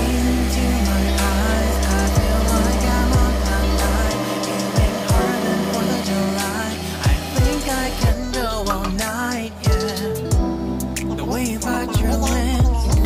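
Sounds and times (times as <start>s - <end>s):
food processor grinding: 0.0s - 8.2s
background music with a beat: 0.0s - 13.0s.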